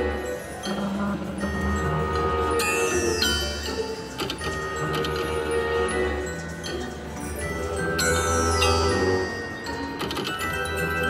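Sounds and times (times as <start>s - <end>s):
chiming tones: 0.0s - 11.0s
slot machine music: 0.0s - 11.0s.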